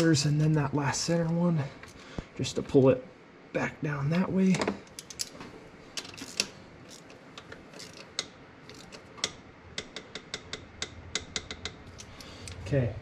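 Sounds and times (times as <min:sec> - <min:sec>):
ratchet wrench clicking: 0:06.0 - 0:12.6.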